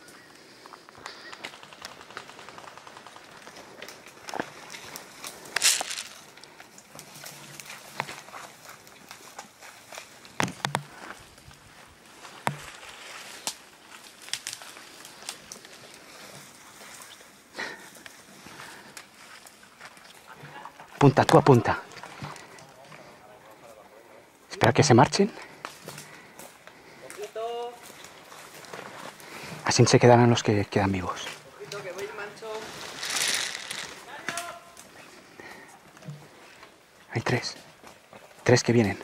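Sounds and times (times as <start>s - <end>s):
branches rustling: 0.0s - 39.0s
footsteps through undergrowth: 2.5s - 23.2s, 25.1s - 39.0s
twigs snapping: 3.4s - 11.6s, 12.2s - 16.0s, 25.4s - 29.5s, 31.3s - 36.2s.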